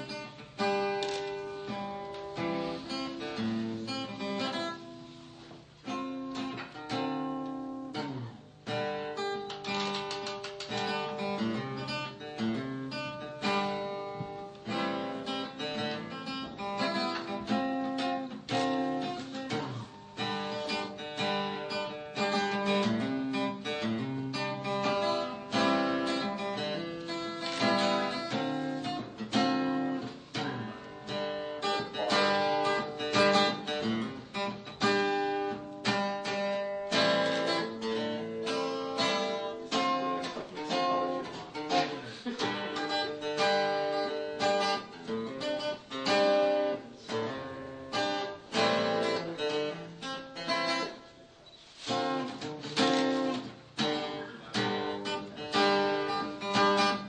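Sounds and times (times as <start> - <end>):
plucked acoustic guitar: 0.0 - 57.0.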